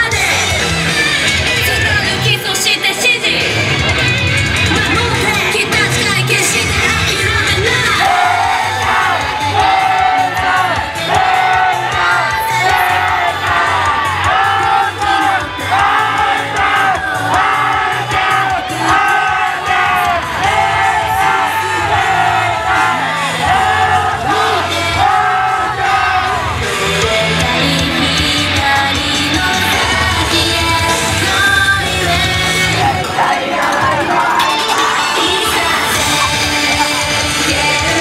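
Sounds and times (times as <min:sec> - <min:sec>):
women singing pop song: 0:00.0 - 0:03.5, 0:04.7 - 0:38.0
backing track with steady beat: 0:00.0 - 0:38.0.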